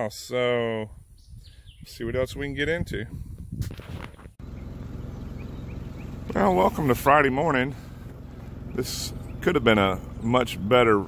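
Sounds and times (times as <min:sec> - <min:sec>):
faint bird chirps: 0:01.0 - 0:02.1, 0:04.4 - 0:06.3
steady low rumble: 0:02.4 - 0:11.0.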